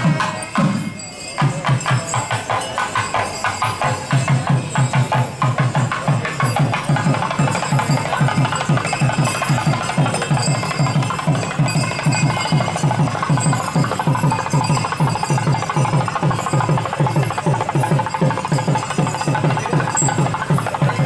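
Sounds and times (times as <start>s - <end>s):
fast steady drumming: 0.0s - 21.0s.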